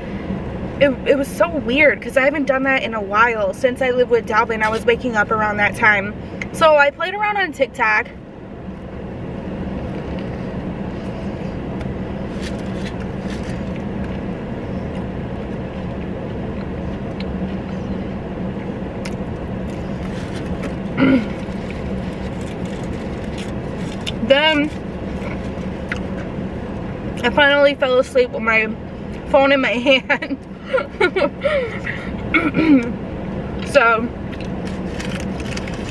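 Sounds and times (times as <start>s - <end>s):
car engine hum inside cabin: 0.0s - 35.9s.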